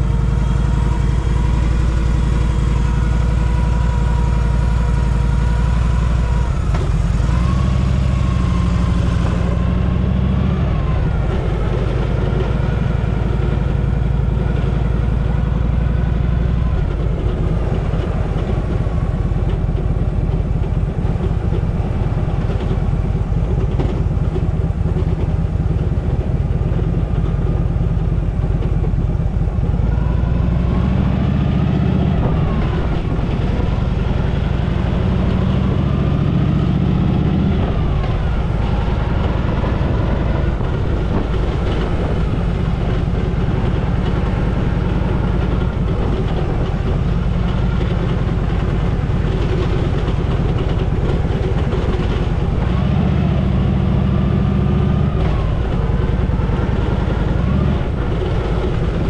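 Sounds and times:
motorcycle engine idling and revving: 0.0s - 59.0s.

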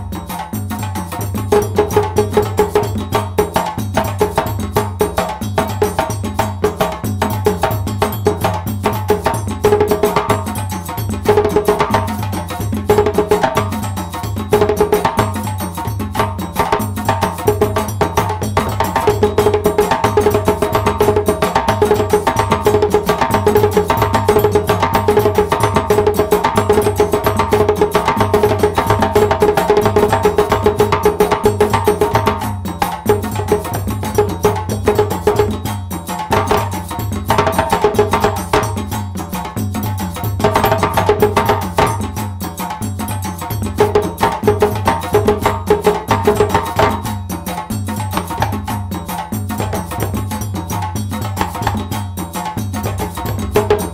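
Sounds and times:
djembe played by hand: 0.0s - 53.9s.

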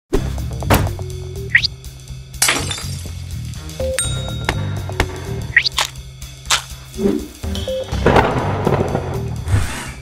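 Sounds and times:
background music: 0.1s - 10.0s.

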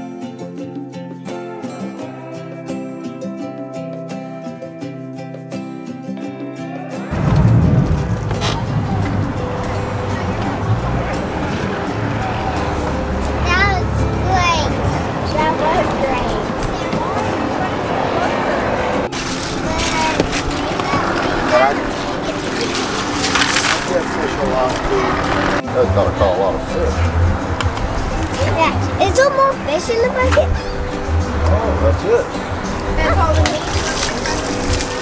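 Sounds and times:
motorboat engine: 7.1s - 35.0s
rushing water: 7.1s - 35.0s
wind: 7.1s - 35.0s
ice rattling: 19.1s - 25.6s, 33.2s - 35.0s.

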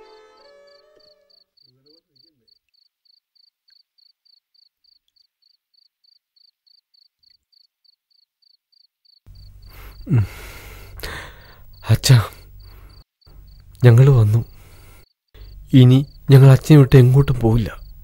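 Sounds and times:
crickets chirping: 0.0s - 18.0s.

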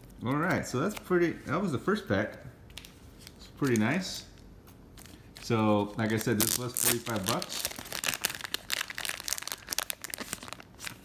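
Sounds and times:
plastic bag crinkling: 5.0s - 11.0s.

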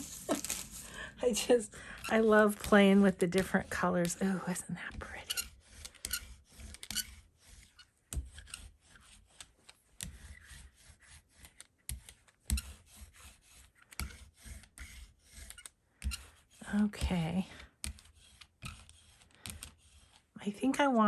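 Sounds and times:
brayer rolling through paint: 0.0s - 21.0s.

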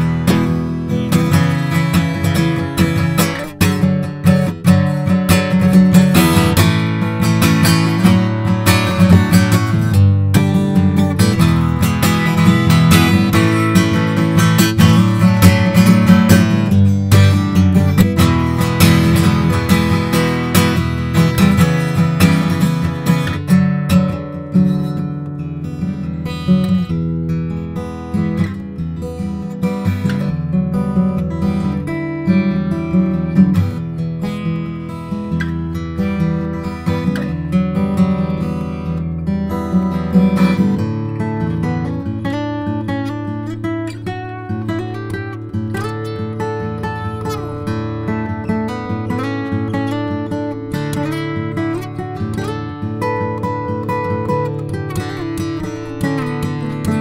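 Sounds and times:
acoustic guitar playing: 0.0s - 57.0s.

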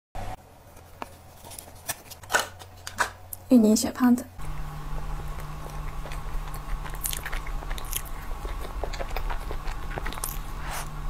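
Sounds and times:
chewing soft dessert: 4.4s - 11.0s.

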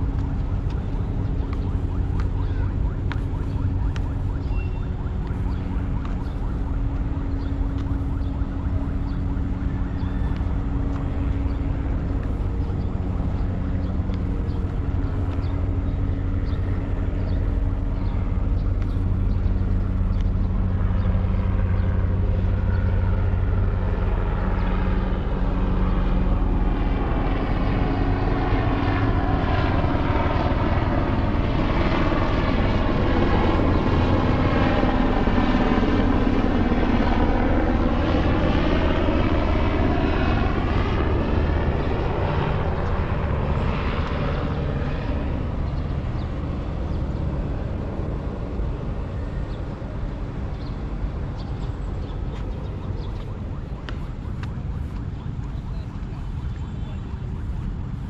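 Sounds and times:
aircraft passing overhead: 0.0s - 58.0s.

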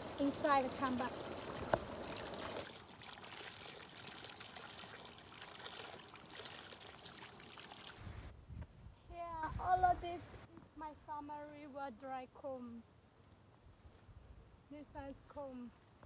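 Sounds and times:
water pouring from a spout: 0.0s - 8.0s
water splashing on hands and rocks: 0.0s - 8.0s.

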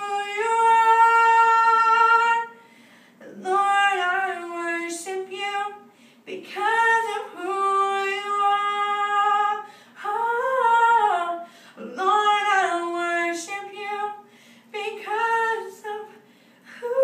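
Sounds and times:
woman singing a cappella: 0.0s - 17.0s
short breaths: 2.6s - 3.2s, 5.9s - 6.3s, 11.4s - 11.8s, 14.3s - 14.7s, 16.2s - 16.8s.

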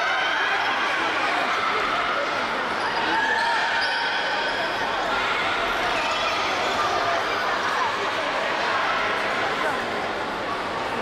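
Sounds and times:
children shouting: 0.0s - 9.7s.

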